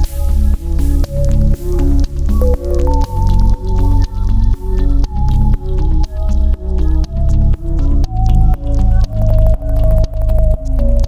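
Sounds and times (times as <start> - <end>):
electronic synthesizer music: 0.0 - 11.0.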